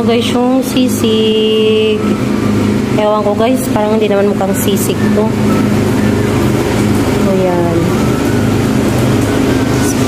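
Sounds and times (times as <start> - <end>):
mechanical hum with low drone: 0.0 - 10.0.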